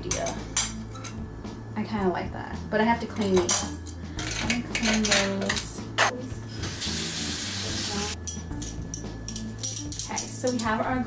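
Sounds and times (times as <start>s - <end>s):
water running from tap: 6.6s - 8.2s.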